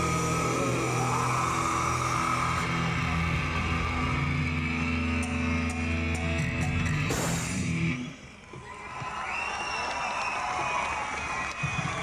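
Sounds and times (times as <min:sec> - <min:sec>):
electric guitars and bass droning: 0:00.0 - 0:08.3.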